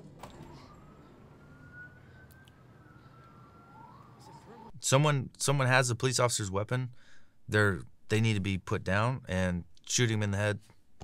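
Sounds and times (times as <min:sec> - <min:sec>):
faint police siren wail: 0:00.0 - 0:04.8.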